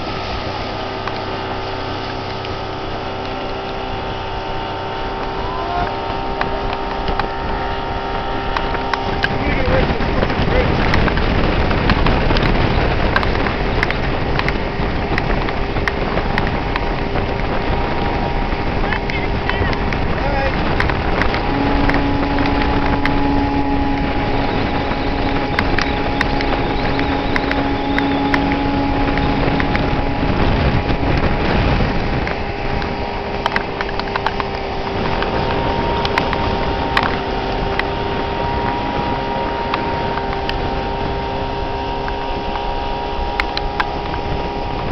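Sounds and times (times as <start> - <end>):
outboard motor running: 0.0 - 44.9
wake rushing: 0.0 - 44.9
wind on microphone: 0.0 - 44.9.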